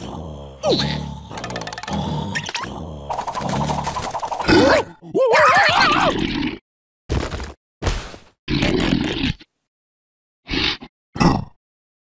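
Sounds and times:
cartoon character grunting: 0:04.5 - 0:06.2.

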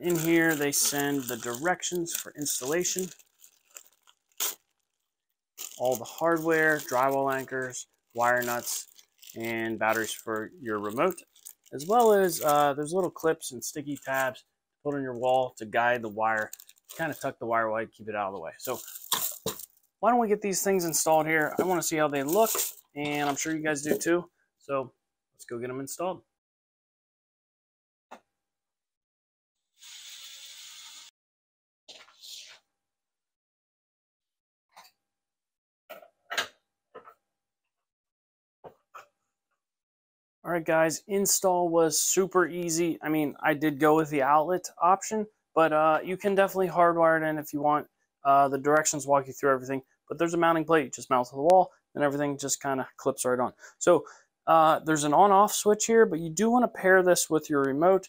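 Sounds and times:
packaging rustling: 0:00.0 - 0:13.3, 0:16.2 - 0:17.3, 0:18.6 - 0:19.9, 0:20.7 - 0:24.0
sharp packaging crinkle: 0:00.0 - 0:14.4, 0:16.2 - 0:17.3, 0:18.6 - 0:19.9, 0:20.8 - 0:24.0.

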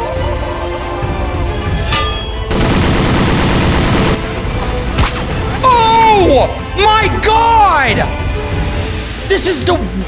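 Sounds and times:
cartoon machine gun firing: 0:02.5 - 0:04.3.

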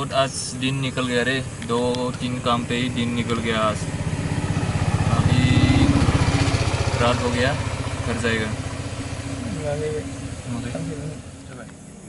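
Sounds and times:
car engine low pulsing: 0:00.0 - 0:12.0.

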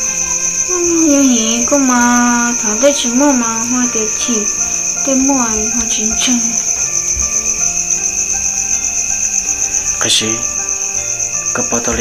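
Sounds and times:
crickets chirping: 0:00.0 - 0:12.0
soft background music: 0:00.0 - 0:12.0.

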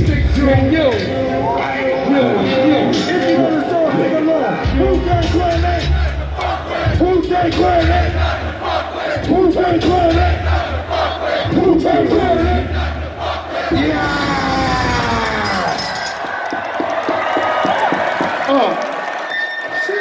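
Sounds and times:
crowd shouting along: 0:01.2 - 0:20.0
heavy bass beat: 0:04.7 - 0:15.4
crowd cheering and clapping: 0:13.2 - 0:20.0.

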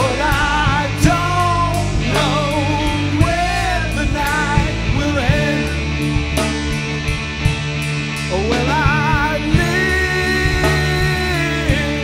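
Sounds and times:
man singing with vibrato: 0:00.0 - 0:05.9, 0:08.3 - 0:12.0
drums: 0:00.0 - 0:12.0
electric guitars: 0:00.0 - 0:12.0.

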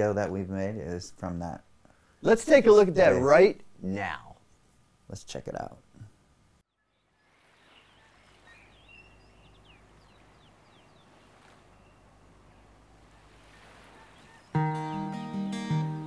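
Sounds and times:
faint outdoor ambience: 0:00.0 - 0:16.0
bird chirps: 0:06.7 - 0:16.0
acoustic guitar chord: 0:14.5 - 0:16.0.

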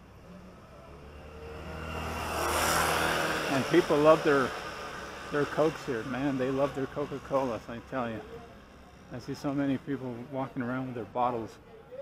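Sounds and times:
motorcycle engine passing: 0:00.0 - 0:10.4.

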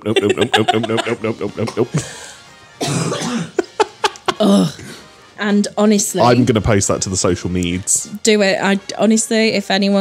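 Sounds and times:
person coughing: 0:01.6 - 0:02.2, 0:02.8 - 0:05.0.

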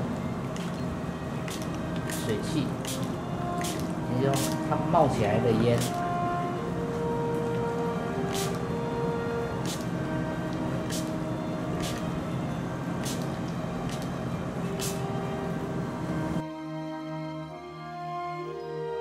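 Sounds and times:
background music: 0:00.0 - 0:19.0
spray bottle squirting: 0:00.5 - 0:04.8, 0:05.7 - 0:06.2, 0:08.2 - 0:08.7, 0:09.5 - 0:12.3, 0:12.9 - 0:15.2.

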